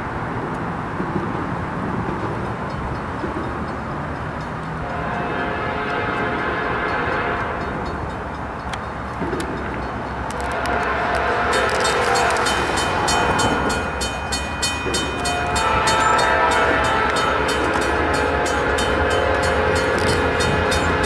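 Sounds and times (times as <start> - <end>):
diesel locomotives rumbling: 0.0 - 21.0
locomotive horn chord: 4.8 - 7.7, 10.4 - 21.0.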